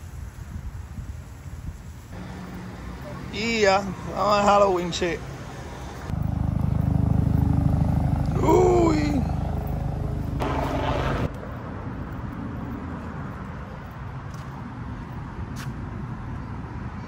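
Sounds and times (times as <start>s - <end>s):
low engine rumble: 2.2s - 11.4s
person speaking: 2.8s - 5.3s, 8.3s - 9.5s.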